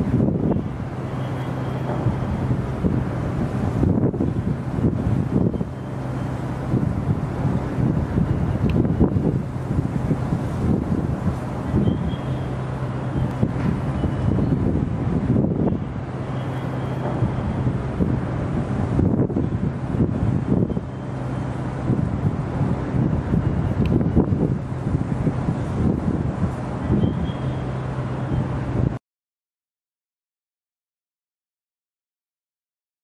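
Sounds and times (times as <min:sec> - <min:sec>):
wind buffeting microphone: 0:00.0 - 0:29.0.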